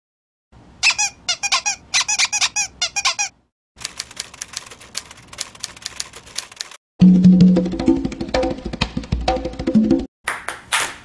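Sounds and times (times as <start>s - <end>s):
high-pitched falling squeaks: 0.8s - 3.3s.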